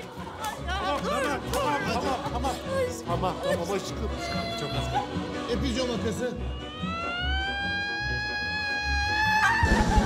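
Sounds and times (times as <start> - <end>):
woman screaming: 6.5 - 10.0.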